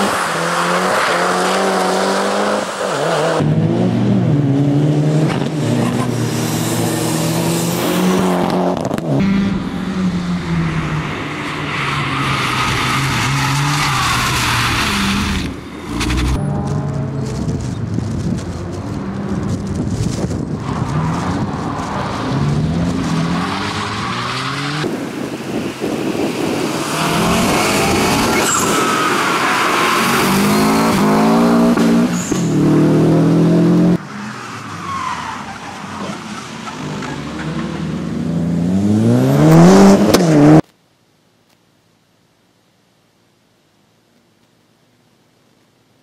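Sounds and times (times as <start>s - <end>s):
rally car engines revving: 0.0s - 40.6s.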